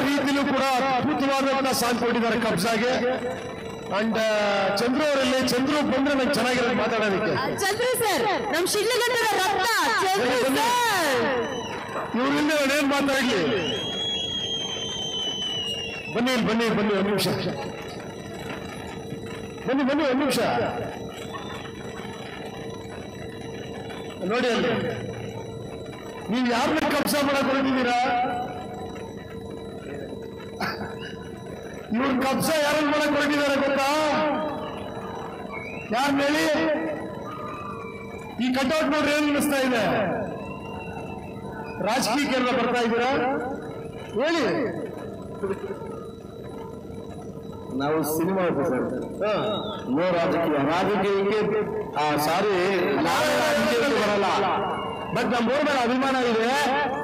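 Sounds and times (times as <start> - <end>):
man speaking over loudspeakers: 0.0 - 14.2, 16.0 - 17.9, 19.6 - 21.0, 24.2 - 25.0, 26.3 - 28.6, 31.9 - 34.6, 35.9 - 37.1, 38.4 - 40.4, 41.8 - 45.7, 47.8 - 57.0
venue background hum: 0.0 - 57.0.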